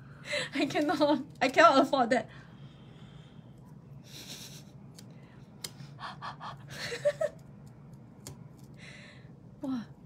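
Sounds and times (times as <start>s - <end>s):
person breathing quickly: 8.7s - 9.4s.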